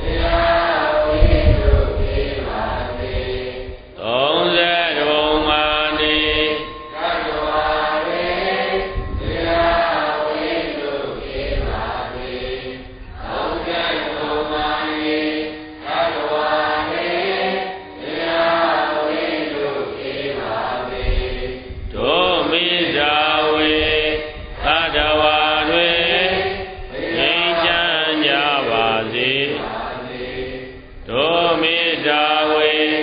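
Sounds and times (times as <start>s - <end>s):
voices chanting: 0.0s - 33.0s.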